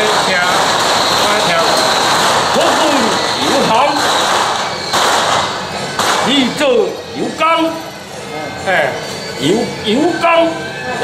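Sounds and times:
firecrackers crackling: 0:00.0 - 0:08.0
people's voices: 0:00.0 - 0:11.0.

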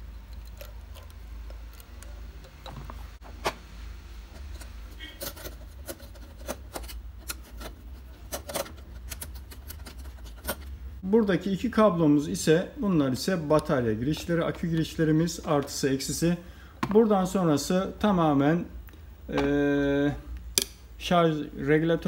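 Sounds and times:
screwdriver clicks and metal scrapes: 0:04.4 - 0:10.7.

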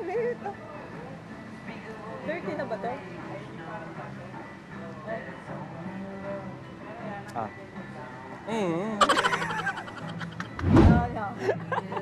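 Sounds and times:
gliding vocal sound: 0:09.0 - 0:11.2.

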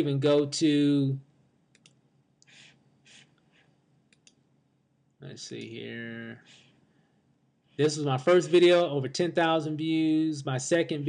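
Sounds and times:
computer mouse clicks: 0:01.7 - 0:03.4, 0:04.1 - 0:04.4
soft puffs of noise: 0:02.5 - 0:03.8, 0:06.3 - 0:08.6.

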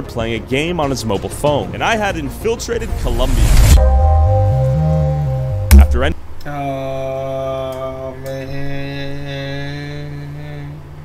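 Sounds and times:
deep male voice chanting: 0:06.6 - 0:11.0.

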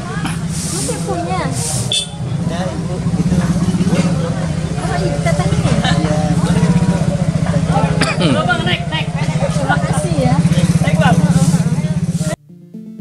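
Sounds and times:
small engine idling: 0:00.0 - 0:12.4
people talking: 0:00.0 - 0:13.0.

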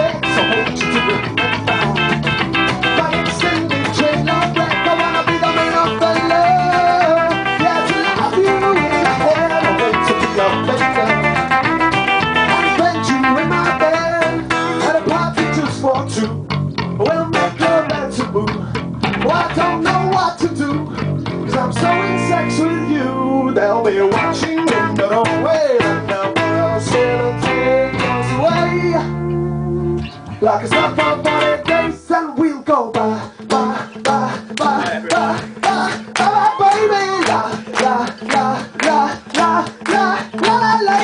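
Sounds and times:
strummed acoustic guitar: 0:00.0 - 0:32.0, 0:33.0 - 0:41.0
electric bass guitar: 0:00.0 - 0:41.0.

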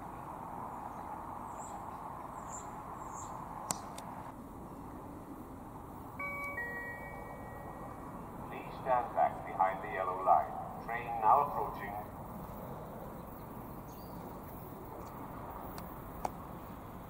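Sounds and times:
faint outdoor background hiss: 0:00.0 - 0:17.0
two-note ding-dong chime: 0:06.2 - 0:08.0.

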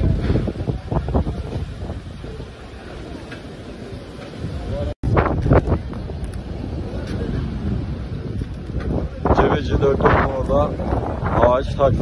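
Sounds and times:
faint street noise: 0:00.0 - 0:12.0
wind buffeting microphone: 0:00.0 - 0:12.0.

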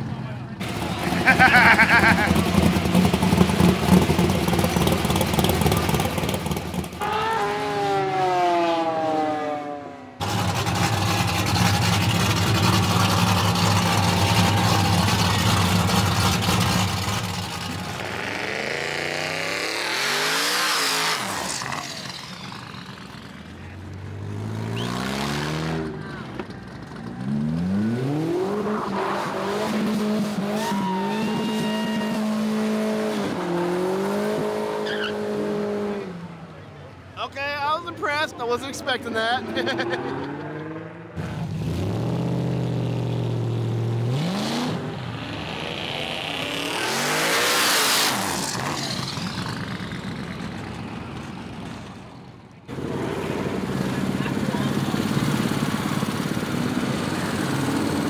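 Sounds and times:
vehicles driving past: 0:00.0 - 0:58.0
engine rumbling pulling away: 0:00.1 - 0:37.2, 0:39.4 - 0:58.0
engine revving: 0:00.6 - 0:23.4, 0:24.1 - 0:26.2, 0:27.0 - 0:36.2, 0:39.3 - 0:50.6, 0:52.7 - 0:58.0.

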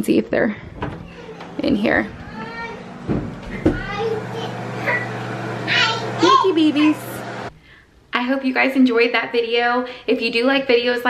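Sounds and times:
steady low hum: 0:00.5 - 0:07.6
children squealing and babbling: 0:01.0 - 0:07.0
short knocks: 0:02.9 - 0:03.9.

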